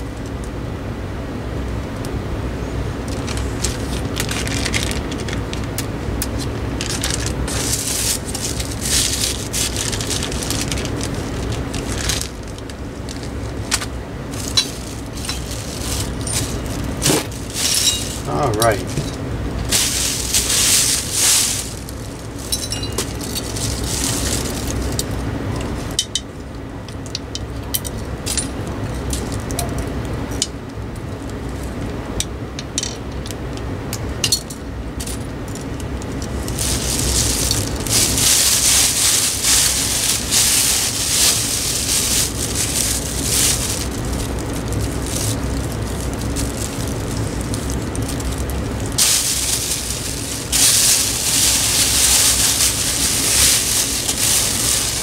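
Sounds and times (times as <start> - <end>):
plastic bag crinkling: 3.1 - 5.7, 6.3 - 26.0, 35.0 - 55.0
clicks and clinks of parts: 14.5 - 21.7, 22.5 - 24.1, 26.9 - 30.6, 34.2 - 36.8.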